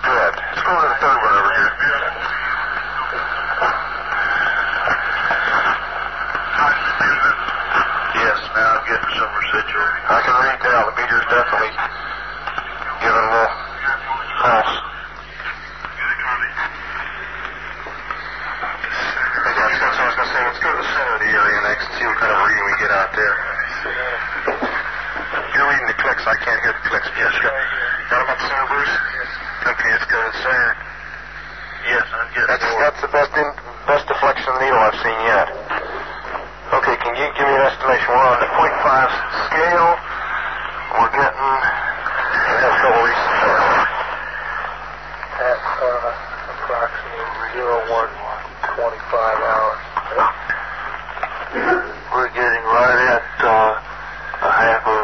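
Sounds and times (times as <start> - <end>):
men talking: 0.0 - 55.0
steady low hum: 0.0 - 55.0.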